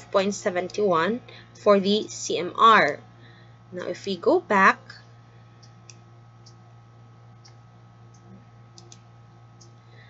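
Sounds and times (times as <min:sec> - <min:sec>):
low electrical hum: 0:00.0 - 0:10.0
computer mouse clicks: 0:07.4 - 0:09.8.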